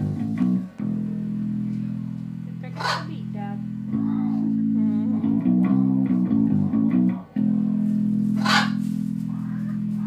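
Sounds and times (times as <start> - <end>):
electric bass sustained note: 0.0 - 10.0.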